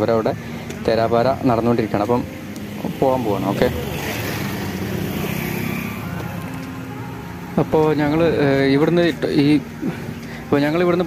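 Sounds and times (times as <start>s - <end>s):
motorcycle driving by: 1.5s - 8.6s
car driving by: 2.0s - 8.4s.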